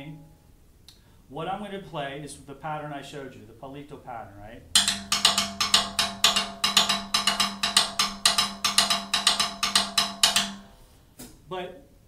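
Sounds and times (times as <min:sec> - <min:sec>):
drumsticks clicking on drum kit: 0:04.8 - 0:11.4.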